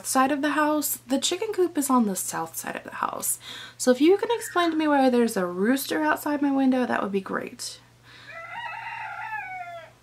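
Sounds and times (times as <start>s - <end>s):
person speaking in room: 0.0s - 8.4s
rooster crowing: 8.2s - 10.0s.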